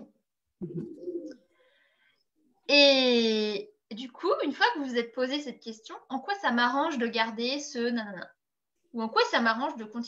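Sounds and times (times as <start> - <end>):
pigeon cooing: 0.6 - 1.6.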